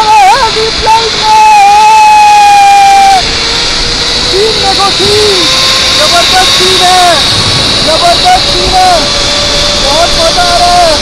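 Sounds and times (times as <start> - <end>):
man yelling with excitement: 0.0 - 3.2
rushing air on microphone: 0.0 - 11.0.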